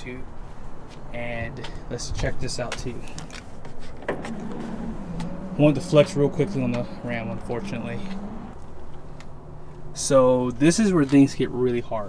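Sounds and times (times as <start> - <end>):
electric motor hum: 4.1 - 9.8.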